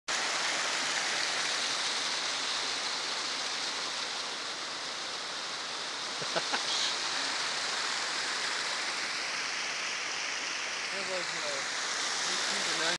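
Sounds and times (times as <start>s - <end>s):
water rushing over rocks: 0.1s - 12.9s.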